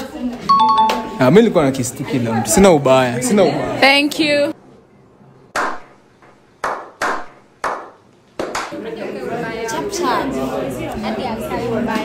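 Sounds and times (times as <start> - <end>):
hand claps: 6.6 - 8.8.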